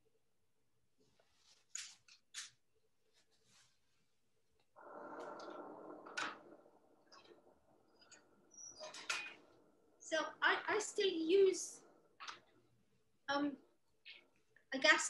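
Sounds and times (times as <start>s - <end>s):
gas burner rushing: 4.8s - 12.6s.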